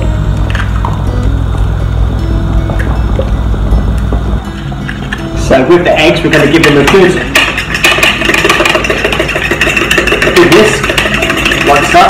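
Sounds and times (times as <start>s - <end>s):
fork whisking eggs in bowl: 6.2s - 12.0s.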